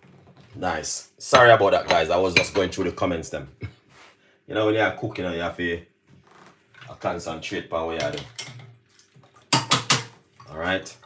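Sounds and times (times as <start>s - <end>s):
metal utensil clinking cookware: 7.9s - 8.7s, 9.5s - 10.1s.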